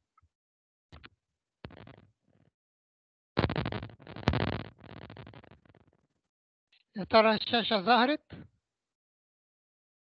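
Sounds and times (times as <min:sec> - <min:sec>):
rough crackling noise bursts: 0:01.6 - 0:02.1, 0:03.4 - 0:06.0.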